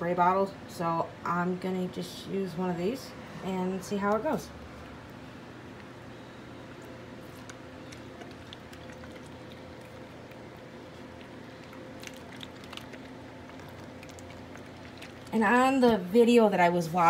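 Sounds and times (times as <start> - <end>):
steady low hum: 0.0 - 17.0
water ticking and dripping on canvas: 7.3 - 15.4.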